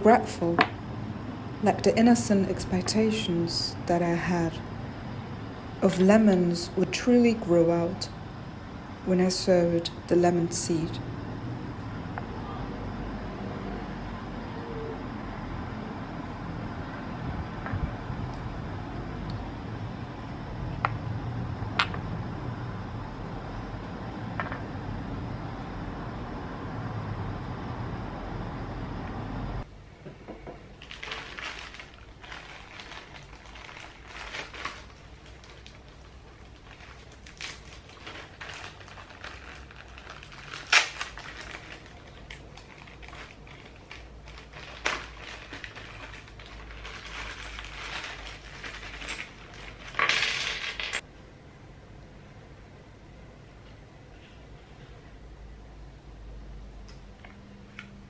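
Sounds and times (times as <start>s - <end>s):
low rumble and hiss: 0.0s - 58.0s
plastic bags crinkling: 30.8s - 51.0s.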